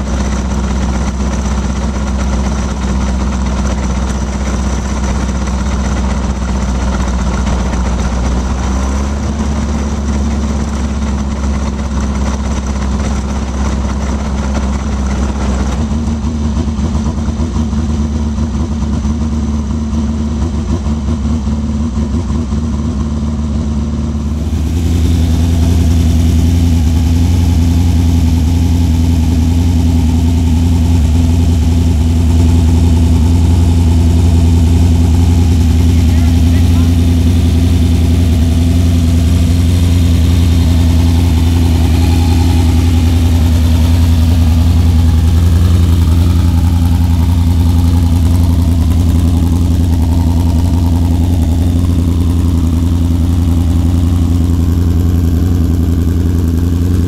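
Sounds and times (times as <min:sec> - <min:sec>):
racing engine idling: 0:00.0 - 0:57.0.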